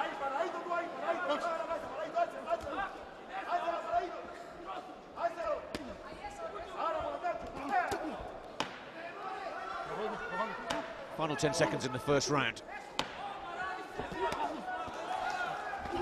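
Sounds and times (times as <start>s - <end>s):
arena crowd noise: 0.0s - 16.0s.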